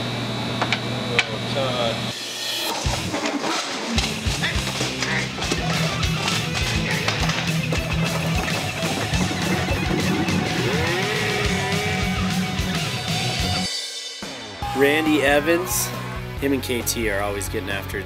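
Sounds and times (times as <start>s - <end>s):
rock music with electric guitar: 2.7s - 18.0s
steady drum beat: 14.6s - 17.9s.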